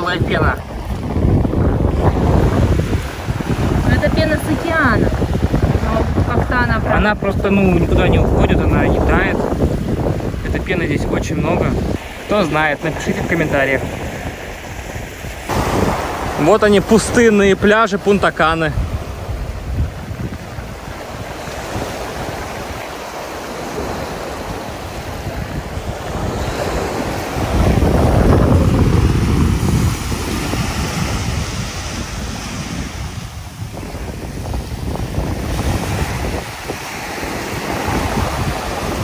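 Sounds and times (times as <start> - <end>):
ocean surf washing onto beach: 0.0 - 39.0
wind rumbling on microphone: 0.0 - 39.0.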